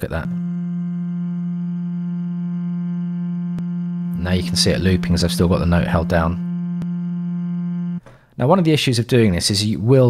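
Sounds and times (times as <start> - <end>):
steady sampled vocal tone: 0.0 - 8.0.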